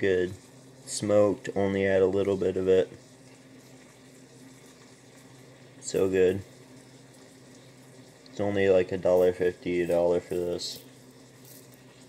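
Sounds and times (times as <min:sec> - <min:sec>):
food hissing on stove: 0:00.0 - 0:12.0
man speaking: 0:08.4 - 0:10.8.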